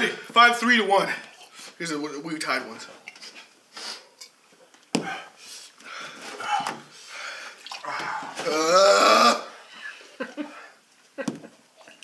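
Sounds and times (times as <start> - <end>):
milk glugging from jug into glass: 7.6 - 8.5.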